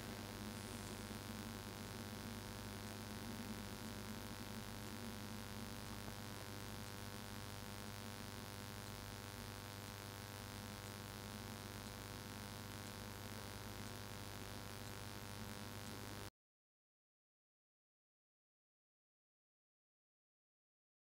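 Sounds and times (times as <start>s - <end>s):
low hiss: 0.0s - 4.6s
faint electrical hum: 0.0s - 16.3s.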